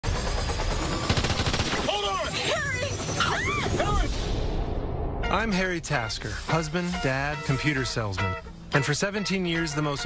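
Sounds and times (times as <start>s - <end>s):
rapid automatic gunfire: 0.0s - 3.1s
action sound mix: 0.0s - 8.6s.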